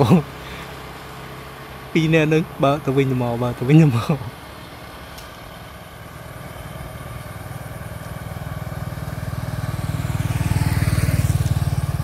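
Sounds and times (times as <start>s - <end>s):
small motorbike passing by: 0.0s - 12.0s.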